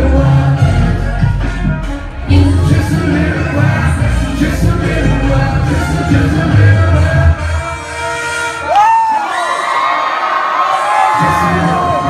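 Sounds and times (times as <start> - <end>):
person singing: 0.0 - 8.2
bass beat: 0.0 - 8.8
hip-hop music through speakers: 0.0 - 9.9, 10.8 - 12.0
crowd cheering and whooping: 8.5 - 12.0.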